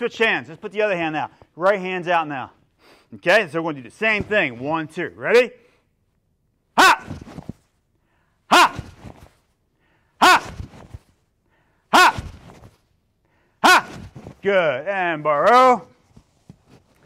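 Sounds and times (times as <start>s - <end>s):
man's martial arts shout: 6.7s - 7.5s, 8.5s - 9.3s, 10.2s - 11.0s, 11.9s - 12.7s, 13.6s - 15.9s.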